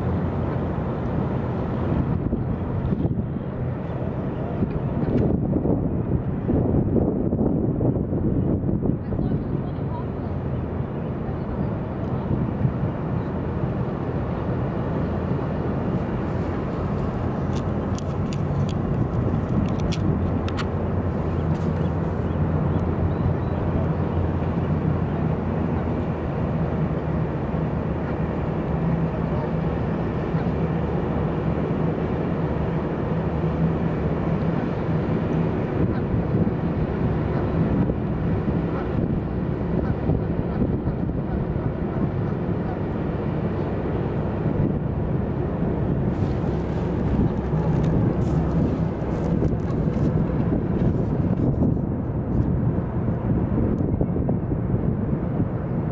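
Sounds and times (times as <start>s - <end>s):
distant road traffic rumble: 0.0s - 6.8s, 8.4s - 55.9s.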